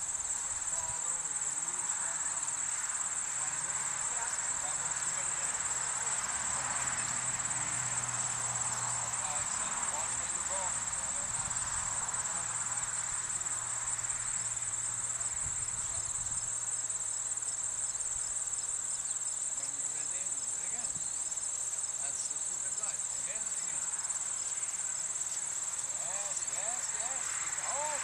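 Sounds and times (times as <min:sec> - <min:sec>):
crickets trilling: 0:00.0 - 0:28.0.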